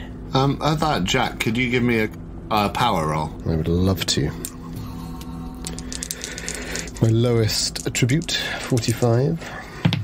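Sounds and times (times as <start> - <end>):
dice clattering: 5.2 - 9.3.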